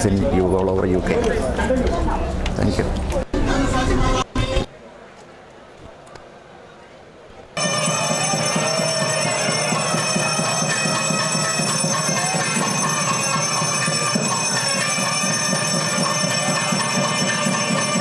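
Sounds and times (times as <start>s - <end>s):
dense din: 7.6s - 18.0s
temple bells ringing: 7.6s - 18.0s.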